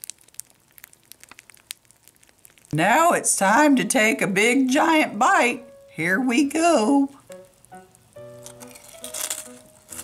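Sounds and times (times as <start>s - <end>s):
cereal crackling in milk: 0.0s - 3.8s, 6.8s - 10.0s.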